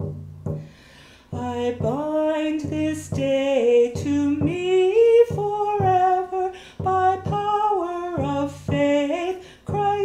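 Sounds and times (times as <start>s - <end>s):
woman singing a sacred song: 1.3s - 10.0s.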